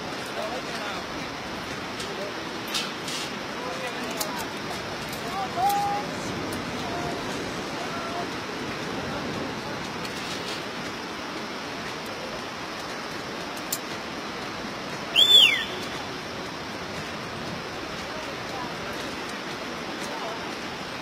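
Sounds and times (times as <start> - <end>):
steady rushing noise: 0.0 - 21.0
high whistle falling in pitch: 15.1 - 15.9.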